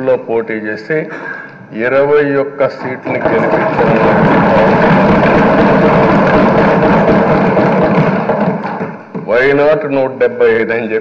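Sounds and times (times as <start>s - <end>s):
people thumping wooden desks: 2.8s - 10.1s.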